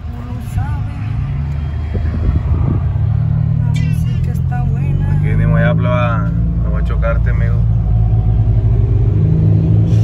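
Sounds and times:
car engine running: 0.0s - 10.0s
road noise: 0.0s - 10.0s.

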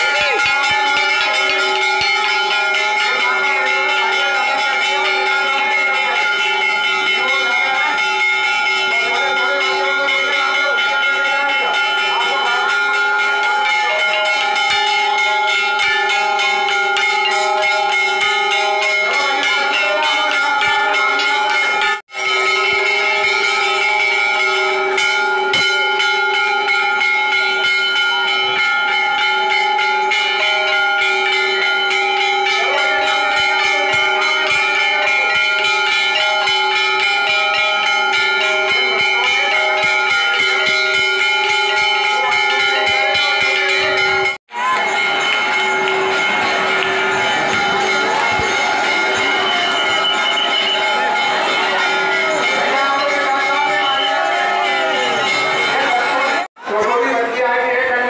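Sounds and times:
bells ringing: 0.0s - 58.0s.

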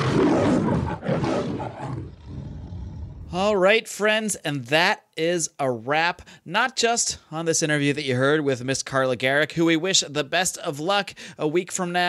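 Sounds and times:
lion roaring: 0.0s - 3.5s.

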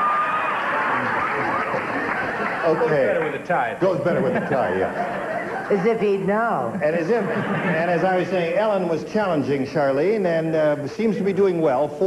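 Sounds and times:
studio audience murmur: 0.0s - 8.5s.

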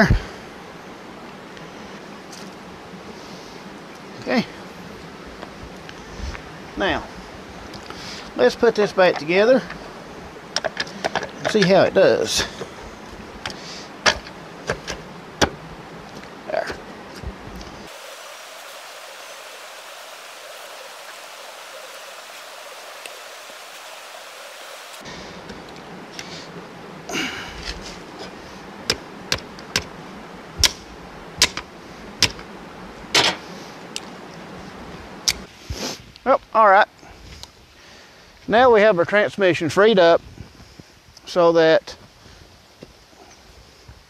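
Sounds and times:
steady hiss: 0.0s - 44.0s.

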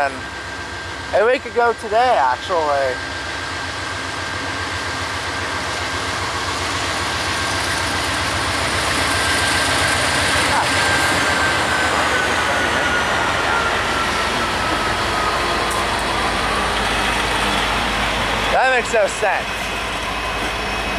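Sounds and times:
diesel locomotives rumbling past: 0.0s - 20.9s.

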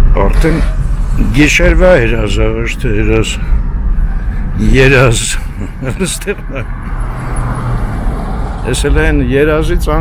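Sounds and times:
car engine running: 0.0s - 10.0s
tyre and road noise: 0.0s - 10.0s.

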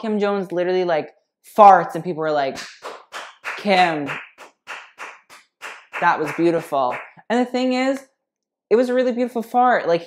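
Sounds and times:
person clapping hands: 2.6s - 7.2s.

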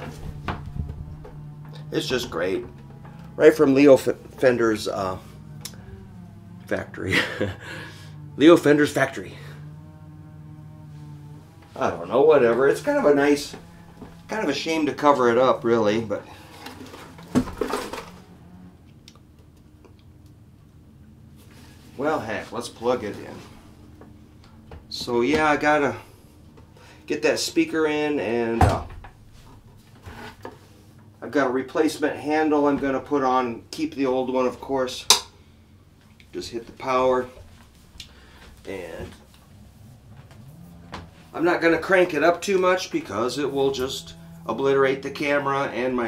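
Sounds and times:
amplifier electrical hum: 0.0s - 30.4s
faint clicks: 5.5s - 5.9s.

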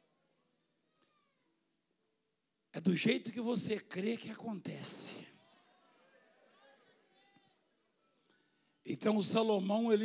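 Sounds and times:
man speaking: 2.8s - 5.4s.

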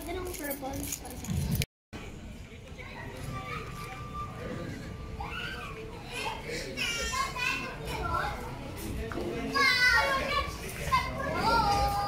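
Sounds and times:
children shouting at play: 5.1s - 8.4s, 9.4s - 12.0s.

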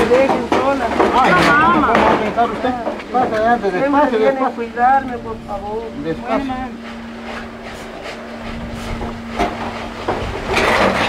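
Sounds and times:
scraping rattling noise: 0.0s - 11.0s
steady low hum: 0.0s - 11.0s
shuffling footsteps: 0.2s - 11.0s.

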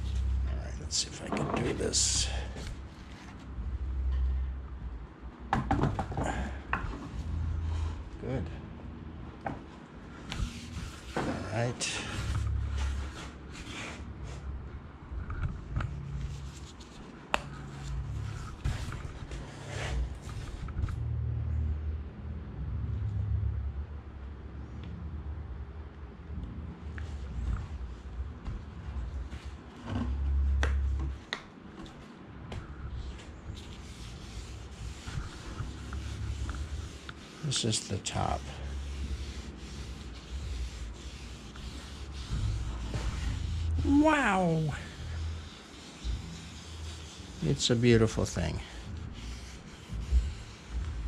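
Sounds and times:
cloth rag rubbing wood: 0.0s - 3.6s, 10.3s - 14.5s, 15.9s - 20.7s, 33.0s - 51.0s.

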